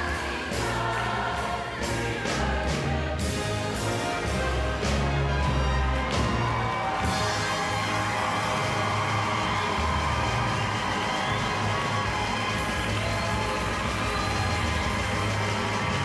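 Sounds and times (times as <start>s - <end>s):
gospel choir and orchestra: 0.0s - 16.0s
audience cheering and whooping: 5.2s - 16.0s.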